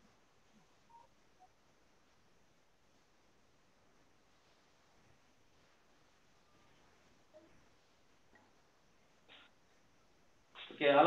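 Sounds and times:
faint brief beeps: 0.9 - 1.5.

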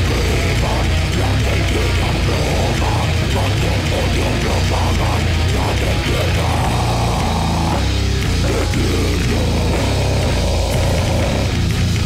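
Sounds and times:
death metal music: 0.0 - 12.0.

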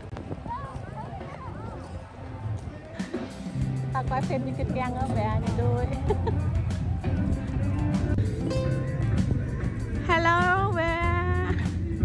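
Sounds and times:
voices in background: 0.1 - 8.4.

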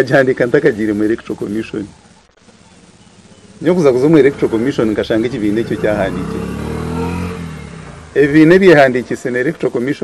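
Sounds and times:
man speaking: 3.6 - 6.6, 8.2 - 10.0
passing vehicle engine: 3.7 - 9.1.

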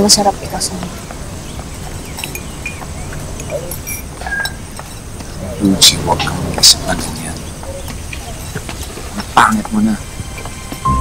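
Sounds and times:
low background ambience: 0.0 - 11.0.

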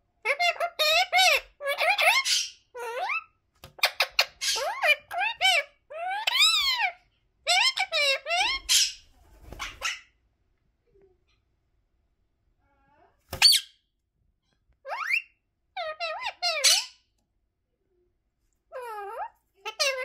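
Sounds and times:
parakeet squawking and chattering: 0.2 - 10.2, 13.3 - 13.9, 14.8 - 17.2, 18.7 - 20.0.

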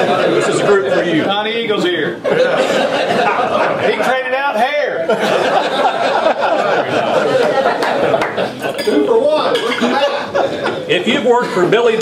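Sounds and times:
men talking: 0.0 - 12.0
cutlery and dishes clinking: 8.6 - 10.0.

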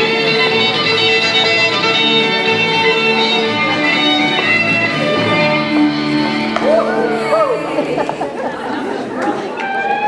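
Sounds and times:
crowd chatting in echoing hall: 0.0 - 10.0
music with held notes: 0.0 - 10.0.

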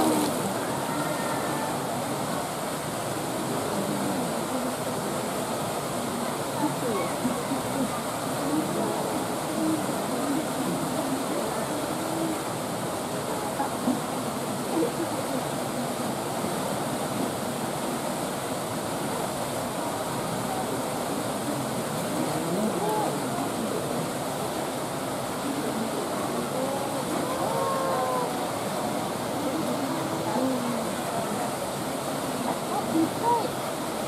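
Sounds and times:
people chattering: 0.0 - 34.0.

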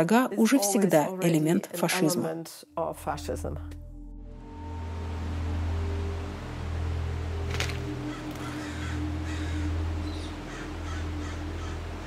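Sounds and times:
low music drone: 1.8 - 12.0
crow cawing: 7.5 - 12.0.

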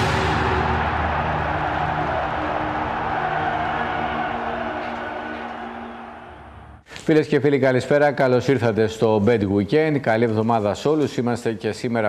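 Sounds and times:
theme music held chord: 0.0 - 6.8.

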